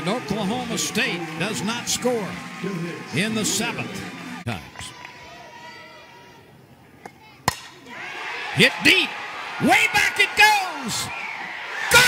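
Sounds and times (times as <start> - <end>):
bat cracking against ball: 7.0 - 7.8.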